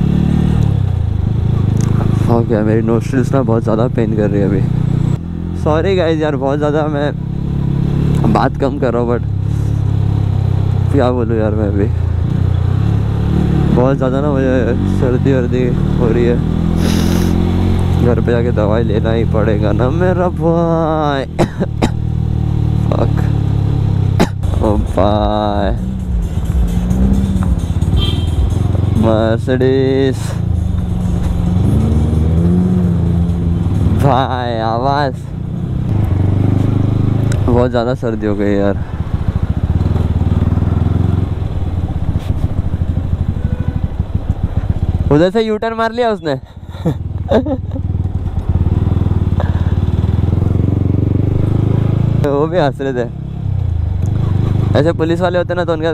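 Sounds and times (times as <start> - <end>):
motorcycle engine at low revs: 0.0 - 55.9.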